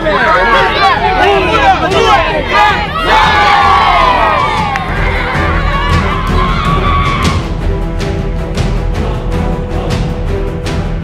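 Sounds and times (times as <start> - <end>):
children shouting a team cheer: 0.0 - 7.4.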